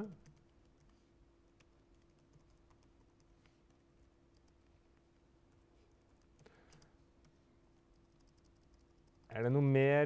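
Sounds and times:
computer keyboard typing: 0.0s - 4.7s, 5.5s - 9.4s
faint low hum: 0.0s - 10.0s.

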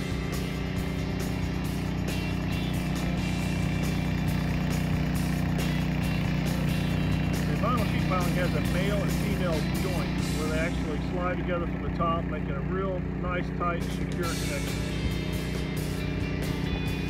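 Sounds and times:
diesel engine running steadily: 0.0s - 17.0s.

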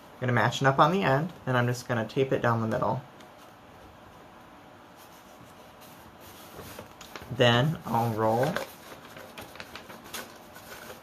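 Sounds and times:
paper rustling: 4.9s - 11.0s
light paper crackles: 5.0s - 11.0s.

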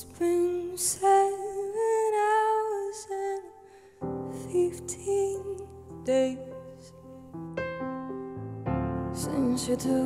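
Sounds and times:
woman singing a slow ballad: 0.0s - 7.2s, 9.1s - 10.0s.

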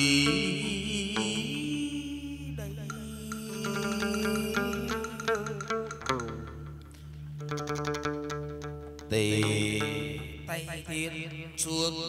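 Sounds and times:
held wavering note: 0.0s - 10.6s
plucked lute notes: 0.0s - 11.6s.

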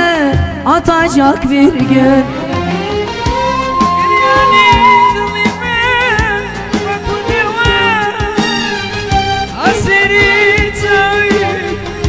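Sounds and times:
live melody over drone: 1.8s - 9.1s
drum beats: 2.6s - 12.0s
person singing: 3.6s - 8.4s.

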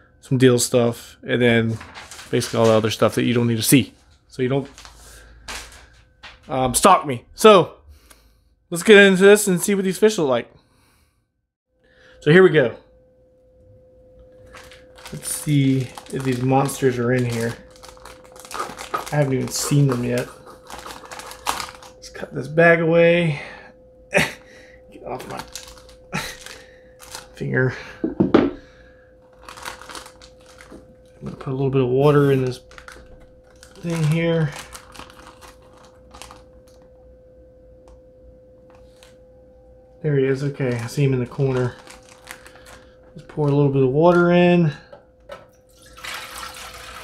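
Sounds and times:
faint steady hum: 0.0s - 47.0s
plastic bag rustling: 1.6s - 6.0s, 14.3s - 22.2s, 25.1s - 28.3s, 29.2s - 36.8s, 40.3s - 44.3s.

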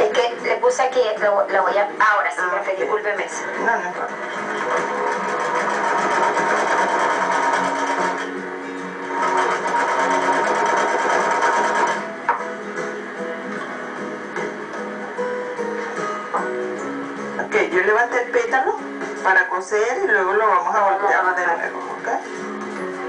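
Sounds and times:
plucked guitar music: 3.6s - 17.5s
sewing machine stitching fabric: 4.1s - 8.3s, 9.1s - 12.0s.

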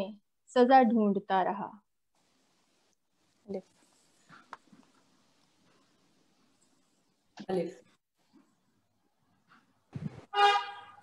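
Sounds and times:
vehicle horn honk: 10.3s - 11.0s.

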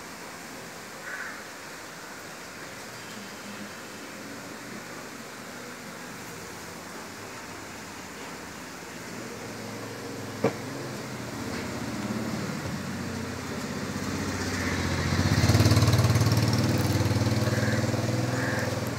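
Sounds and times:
engine running steadily: 9.0s - 18.9s.

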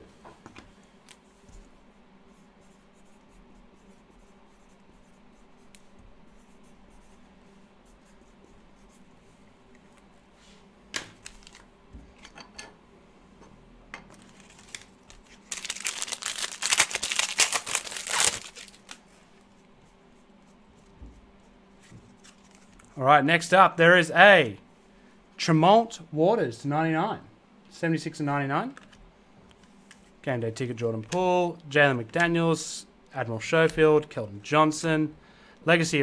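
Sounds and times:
foil wrapper tearing and crinkling: 11.2s - 11.6s, 14.2s - 19.0s.

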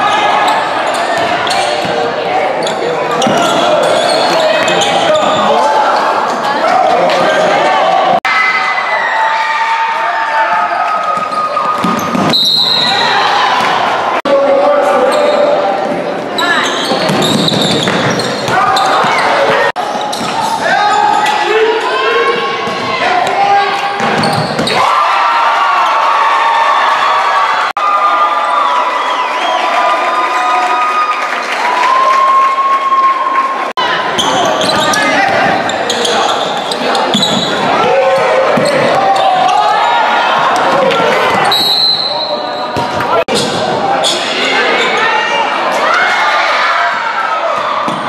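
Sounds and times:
sneakers squeaking: 0.0s - 7.5s, 10.8s - 13.8s, 15.0s - 24.8s, 34.0s - 45.9s, 47.5s - 48.0s
players and spectators voices: 0.0s - 48.0s.

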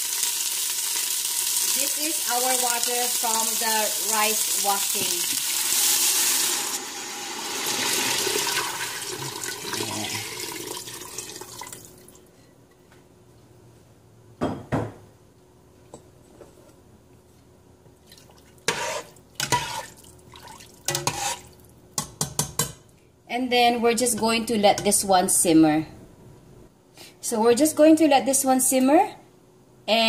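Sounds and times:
water pouring into pot: 0.0s - 12.2s, 19.4s - 21.6s
metal spoon knocking pot: 22.0s - 22.8s.

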